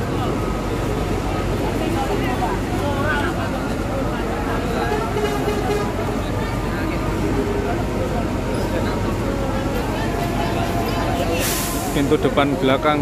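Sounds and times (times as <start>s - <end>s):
crowd of passengers talking: 0.0s - 13.0s
diesel bus idling: 0.0s - 13.0s.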